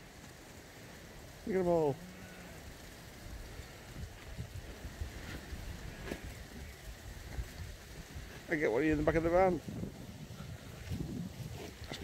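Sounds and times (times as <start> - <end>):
sheep hooves on turf: 0.0 - 12.0.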